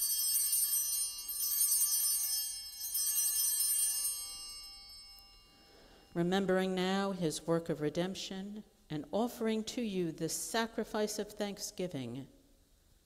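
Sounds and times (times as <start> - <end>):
altar bells ringing: 0.0 - 6.3.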